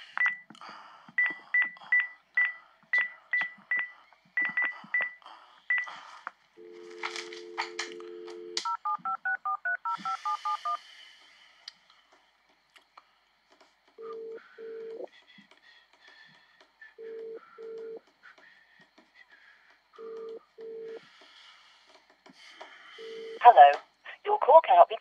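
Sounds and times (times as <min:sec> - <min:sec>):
keypad beeps: 0:00.2 - 0:00.5, 0:01.2 - 0:05.9
dial tone: 0:06.6 - 0:10.6.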